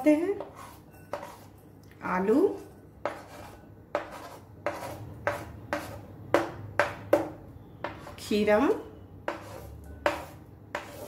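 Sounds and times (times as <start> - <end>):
metal spoon tapping and scraping: 9.3 - 11.0.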